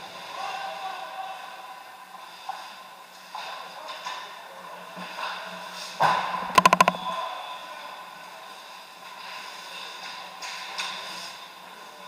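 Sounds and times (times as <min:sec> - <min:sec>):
rattle of sharp clicks: 0:06.6 - 0:07.0.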